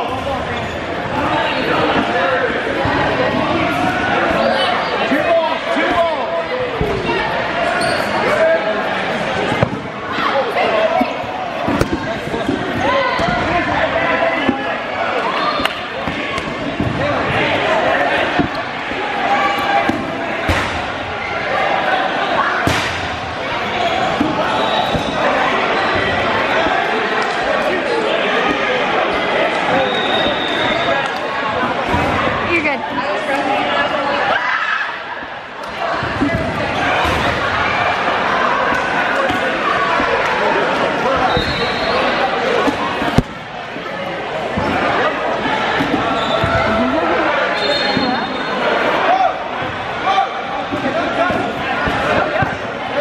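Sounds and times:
players calling: 0.0 - 53.0.

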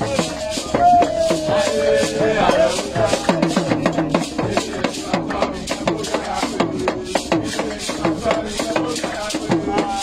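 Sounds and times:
hand drum beating: 0.0 - 10.0
voices chanting and singing: 0.0 - 10.0.

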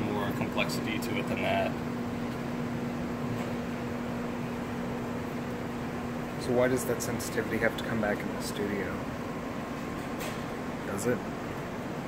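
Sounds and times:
machinery hum and hiss: 0.0 - 12.0.

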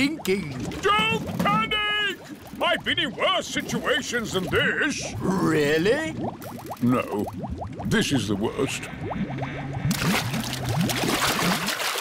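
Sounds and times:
cartoon bubbling and gurgling: 0.0 - 12.0
gush of water: 9.9 - 12.0.

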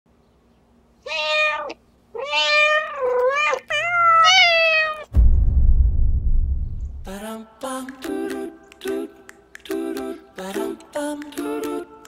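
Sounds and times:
cat meowing: 1.0 - 5.1
deep thud with rumble: 5.1 - 7.2.

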